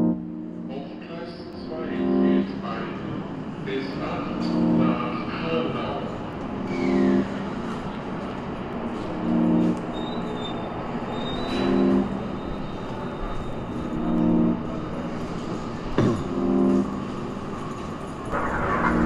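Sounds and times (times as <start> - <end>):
low chord stab: 4.4 - 5.3.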